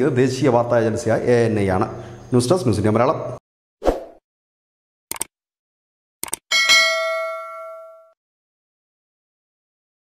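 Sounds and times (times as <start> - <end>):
quick double clicks: 5.1 - 5.3, 6.2 - 6.4
bright bell ding: 6.5 - 8.2.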